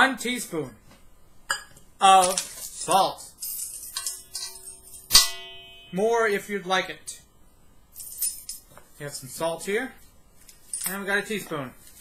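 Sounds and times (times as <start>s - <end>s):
teaspoon clinking against metal bowl: 3.4s - 6.0s.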